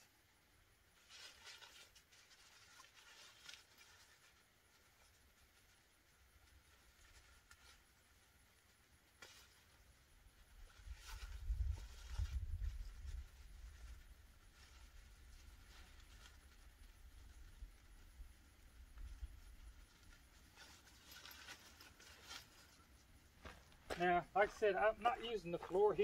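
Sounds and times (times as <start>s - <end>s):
tent fabric rustling: 0.9s - 18.1s, 18.9s - 26.0s.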